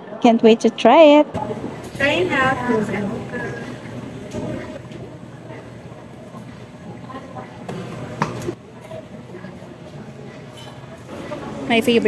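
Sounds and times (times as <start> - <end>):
distant voices: 1.3 - 12.0.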